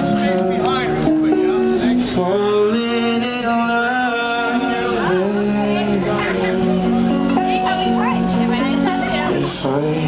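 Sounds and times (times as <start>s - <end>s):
man singing long notes: 0.0s - 7.2s, 9.2s - 10.0s
electric guitar: 0.0s - 10.0s.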